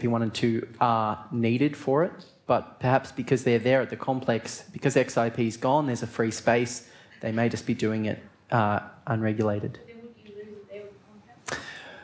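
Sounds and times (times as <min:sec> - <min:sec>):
breath into microphone: 0:11.5 - 0:12.0.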